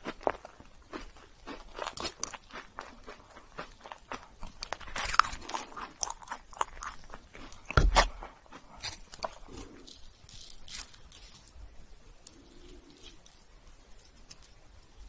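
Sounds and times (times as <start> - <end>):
sticky marshmallow crackling: 0.0 - 15.0.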